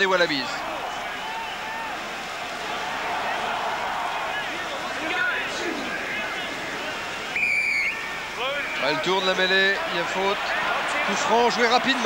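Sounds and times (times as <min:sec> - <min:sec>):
stadium crowd noise: 0:00.0 - 0:12.0
crowd shouts: 0:00.2 - 0:12.0
referee's whistle: 0:07.3 - 0:08.3.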